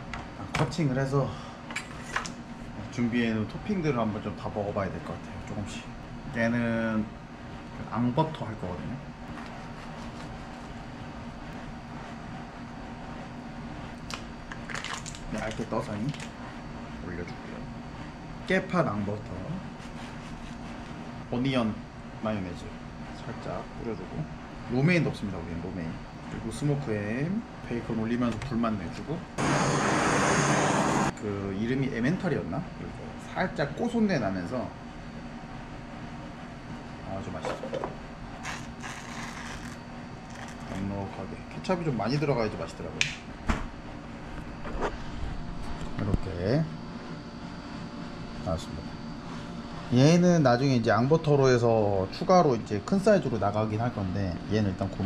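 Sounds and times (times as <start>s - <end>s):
low room hum: 0.0s - 55.0s.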